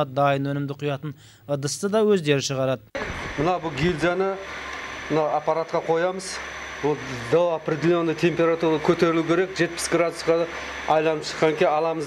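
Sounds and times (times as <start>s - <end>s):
man talking: 0.0s - 4.5s, 5.1s - 12.0s
steady low hum: 2.7s - 12.0s.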